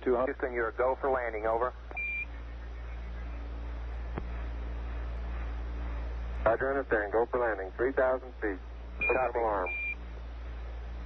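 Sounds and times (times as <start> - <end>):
radio channel hiss and hum: 0.0 - 11.0
single-pitched radio beep: 1.9 - 2.3, 9.0 - 10.0.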